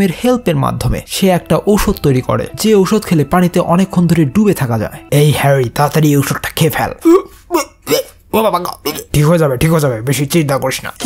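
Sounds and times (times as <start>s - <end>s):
person exclaiming: 7.0s - 8.2s.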